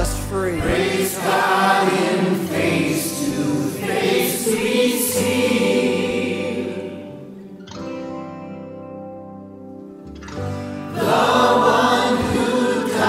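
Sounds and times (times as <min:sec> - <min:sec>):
choir singing a hymn: 0:00.0 - 0:07.6, 0:10.8 - 0:13.0.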